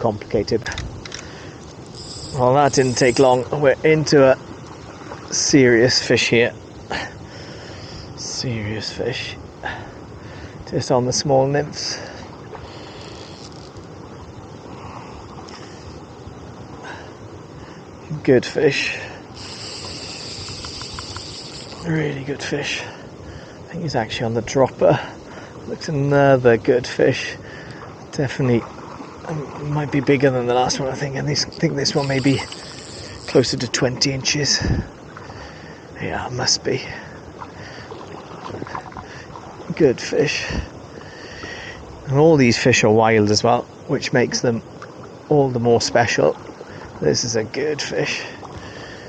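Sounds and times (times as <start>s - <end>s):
wind noise on microphone: 0.0s - 3.7s, 19.3s - 21.9s, 30.7s - 35.7s, 40.4s - 40.9s
flowing river water: 0.0s - 49.0s.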